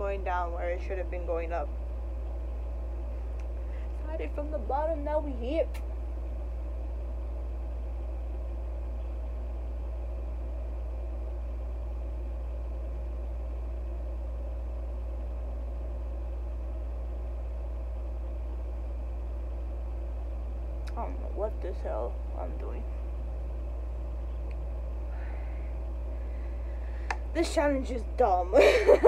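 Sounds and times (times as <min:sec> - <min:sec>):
steady low hum: 0:00.0 - 0:29.0.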